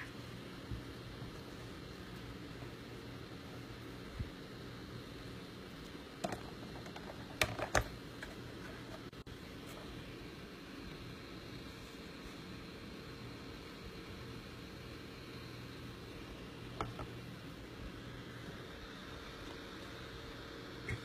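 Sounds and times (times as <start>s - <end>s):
faint electrical hum: 0.0s - 21.0s.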